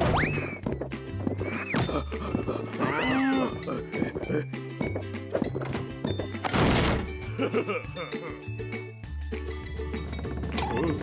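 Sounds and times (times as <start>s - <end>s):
cartoon music with steady beat: 0.0s - 11.0s
cartoon cow mooing: 2.8s - 3.6s.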